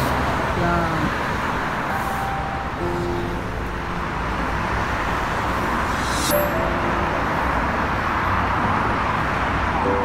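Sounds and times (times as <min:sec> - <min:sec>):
highway traffic rumble: 0:00.0 - 0:10.0.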